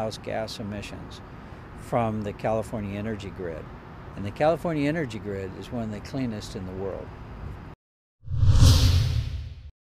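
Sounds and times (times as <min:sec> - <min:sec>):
whoosh sound effect: 0:08.2 - 0:09.7.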